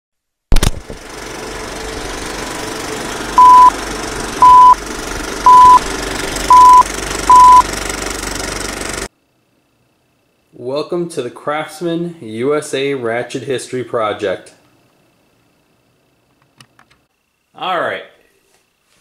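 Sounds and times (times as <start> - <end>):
film projector clatter: 0.6 - 9.1
short beeps: 3.4 - 3.7, 4.4 - 4.8, 5.5 - 5.8, 6.5 - 7.6.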